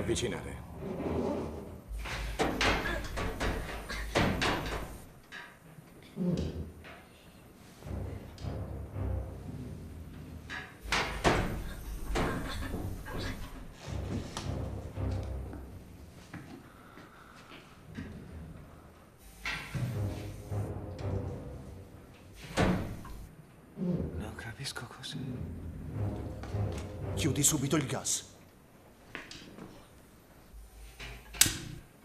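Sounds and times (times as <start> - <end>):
film score music: 7.6 - 17.4, 18.0 - 28.6.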